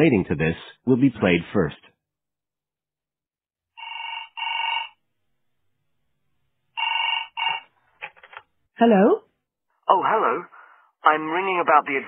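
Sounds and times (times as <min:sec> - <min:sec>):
telephone double ring: 0:03.8 - 0:05.0, 0:06.8 - 0:07.7.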